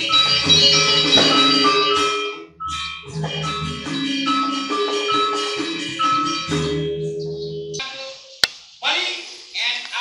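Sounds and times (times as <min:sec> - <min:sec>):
man speaking loudly: 0:08.8 - 0:10.0.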